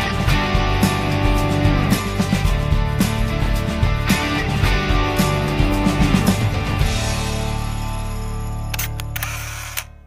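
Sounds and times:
camera shutter clicks: 8.7s - 10.0s.

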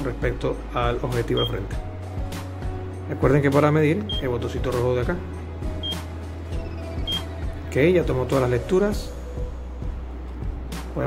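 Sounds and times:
short high beep: 6.6s - 7.2s.

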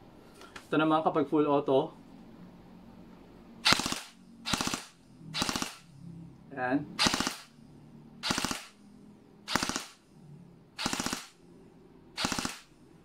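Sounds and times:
airsoft gun firing bursts: 3.6s - 5.8s, 7.0s - 7.5s, 8.2s - 8.8s, 9.5s - 10.0s, 10.8s - 11.4s, 12.2s - 12.7s.

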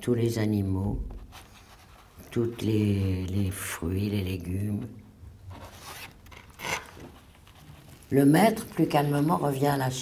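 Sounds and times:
paper rustling: 5.5s - 9.1s.

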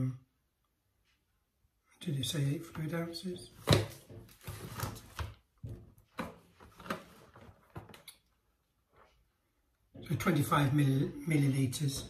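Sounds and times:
paper and plastic tray rustling: 3.5s - 8.0s.

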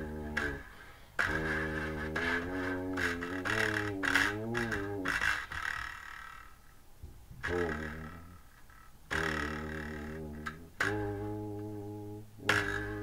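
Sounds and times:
buzzy wind instrument notes: 0.0s - 5.7s, 7.4s - 8.4s, 9.1s - 13.0s.

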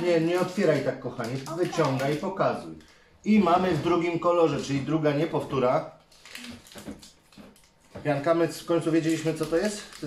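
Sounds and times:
foil wrapper crinkling: 0.0s - 3.0s, 6.1s - 7.9s, 8.6s - 10.0s.

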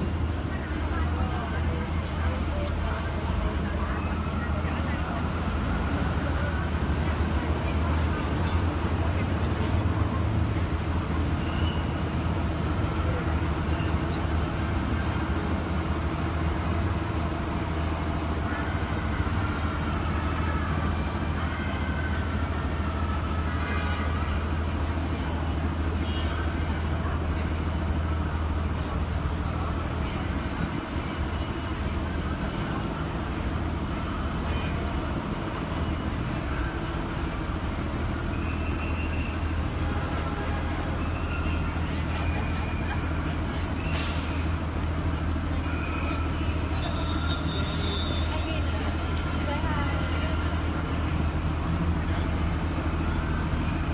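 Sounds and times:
vehicle engines idling and passing: 0.0s - 53.9s
voices of passers-by: 0.0s - 53.9s.

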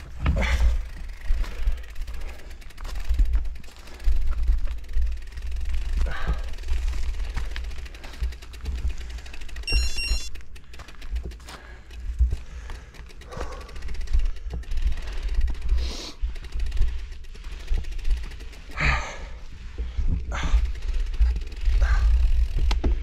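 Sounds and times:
rider breathing hard: 0.0s - 9.7s, 10.4s - 23.0s
bicycle rattling over bumps: 0.0s - 23.0s.

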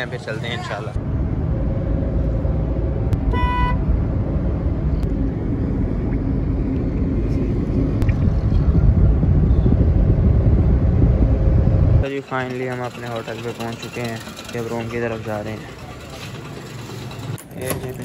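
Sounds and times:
car road and engine rumble: 0.0s - 18.0s
vehicle horn toot: 3.3s - 3.9s.

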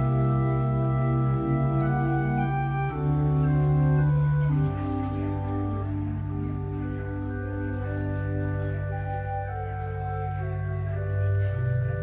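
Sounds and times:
organ music: 0.0s - 12.0s.

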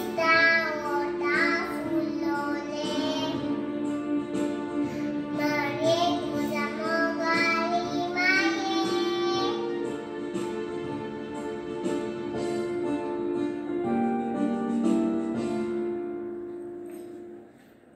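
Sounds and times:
girl singing: 0.0s - 3.7s, 4.9s - 9.9s
instrumental backing music: 0.0s - 17.9s.

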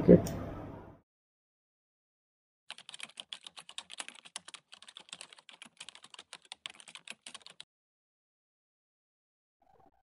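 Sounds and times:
computer keyboard typing clicks: 2.7s - 7.6s.

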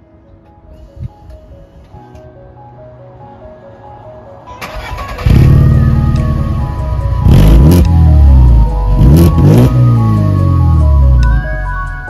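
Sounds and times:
background music: 0.0s - 12.0s
car engine starting and revving: 4.6s - 11.3s.

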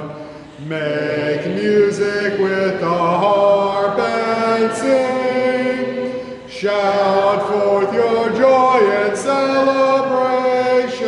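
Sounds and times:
hymn sung in long notes: 0.0s - 11.0s.

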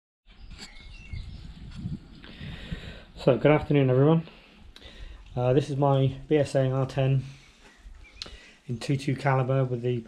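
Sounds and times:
faint bird chirps: 0.3s - 2.0s, 7.3s - 8.8s.

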